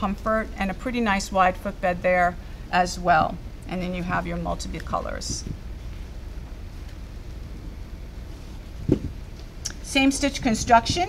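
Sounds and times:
low steady hum with hiss: 0.0s - 11.0s.

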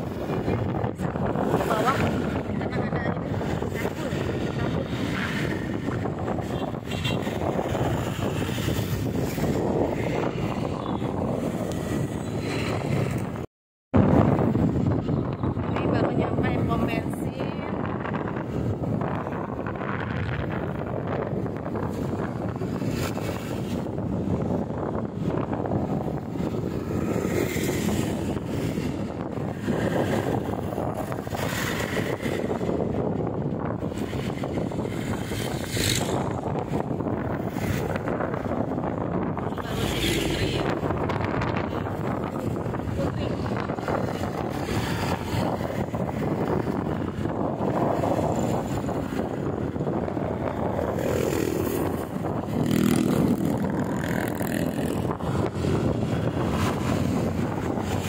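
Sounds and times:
tyres on road: 0.0s - 58.0s
wind buffeting microphone: 0.0s - 58.0s
motorcycle running: 18.2s - 58.0s.

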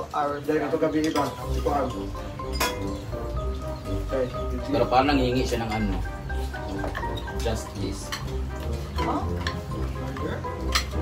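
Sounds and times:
spoons clinking on plates: 0.7s - 3.4s, 4.7s - 11.0s
background music with bass: 0.8s - 11.0s.

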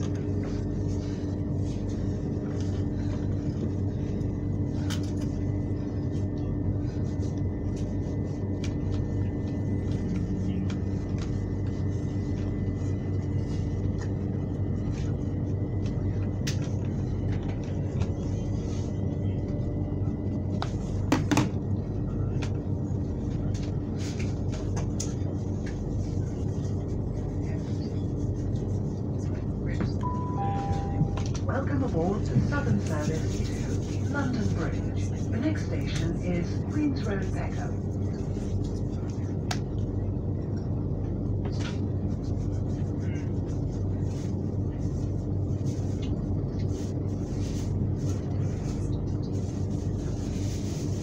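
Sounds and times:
train rumble and hum: 0.0s - 51.0s
two-note falling chime: 30.0s - 31.3s.

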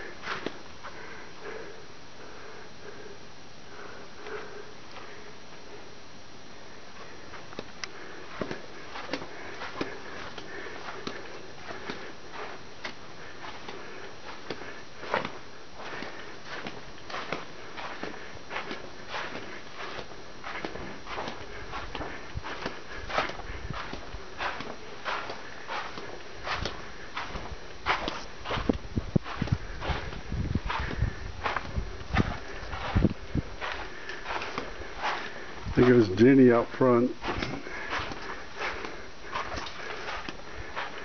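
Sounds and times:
footsteps crunching on sand: 7.0s - 41.0s.

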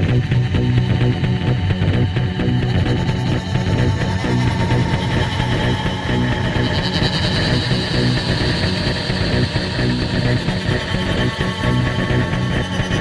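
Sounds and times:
high sustained tone: 0.0s - 13.0s
loud rock music: 0.0s - 13.0s.

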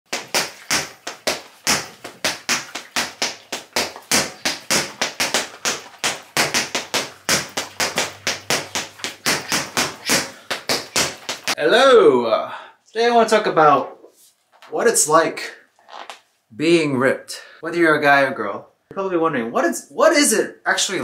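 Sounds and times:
punches thudding on punching bag: 0.1s - 11.6s.

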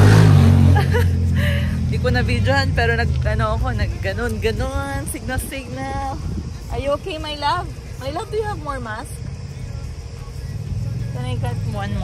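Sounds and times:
car engine idling: 0.0s - 12.0s
faint music: 1.8s - 12.0s.

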